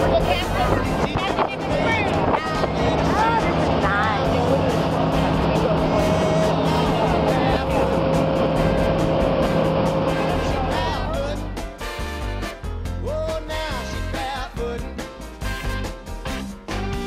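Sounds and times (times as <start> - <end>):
people's voices: 0.0 - 11.6
motorboat engine running: 0.0 - 12.2.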